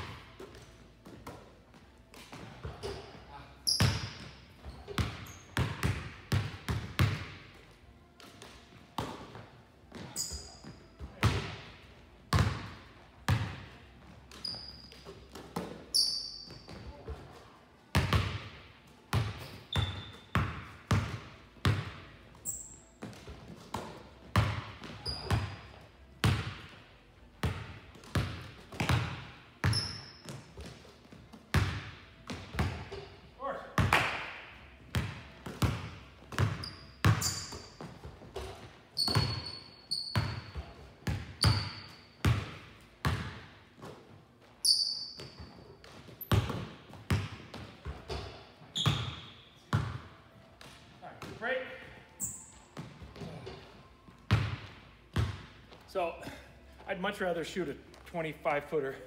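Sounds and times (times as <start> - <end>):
sneaker squeaks: 2.4 - 5.9, 9.9 - 11.1, 14.2 - 17.4, 19.4 - 20.5, 22.4 - 25.8, 29.6 - 30.9, 36.3 - 42.4, 43.8 - 46.7, 47.5 - 50.0, 51.2 - 55.8
basketballs bouncing on hardwood: 3.8 - 7.4, 12.3 - 13.7, 17.9 - 22.0, 23.0 - 26.7, 27.4 - 33.1, 34.9 - 44.0, 45.1 - 51.8, 52.8 - 53.6, 54.2 - 55.8.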